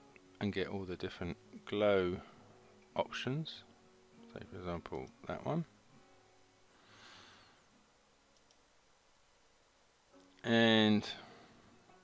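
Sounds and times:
computer mouse clicks: 0:08.3 - 0:08.6.

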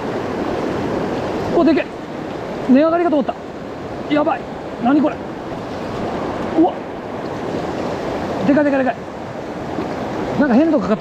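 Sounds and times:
stream rushing over rocks: 0:00.0 - 0:11.0.

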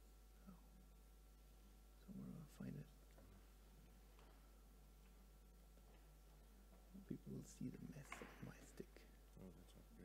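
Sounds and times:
low murmured speech: 0:07.0 - 0:10.0
person whispering: 0:07.0 - 0:10.0.

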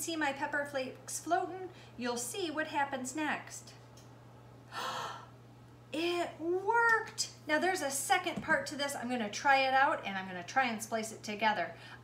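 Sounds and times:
woman gasping: 0:04.7 - 0:05.4.

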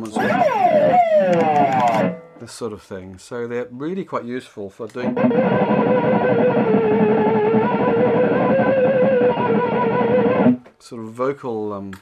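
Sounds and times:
electric guitar sustained note: 0:05.1 - 0:10.6.

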